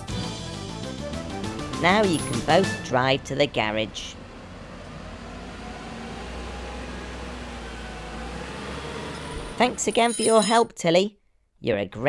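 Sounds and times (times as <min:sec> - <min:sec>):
vehicle engines and road rumble: 0:00.9 - 0:10.6.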